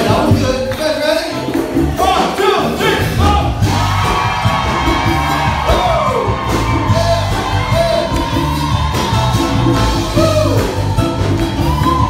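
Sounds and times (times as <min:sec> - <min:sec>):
bass notes: 0:00.0 - 0:12.0
hand drums: 0:03.1 - 0:12.0.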